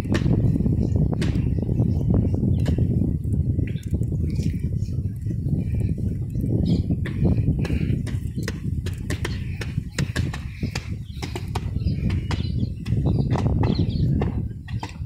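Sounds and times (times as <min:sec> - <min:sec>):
wind rumble on microphone: 0:00.0 - 0:15.0.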